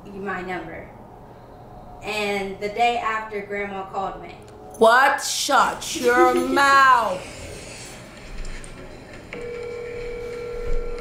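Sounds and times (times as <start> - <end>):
phone ringing tone: 9.4 - 11.0.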